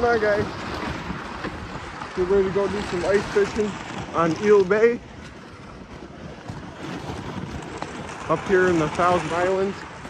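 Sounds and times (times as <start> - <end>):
sled dragged over snow: 0.0 - 10.0
wind on microphone: 0.0 - 10.0.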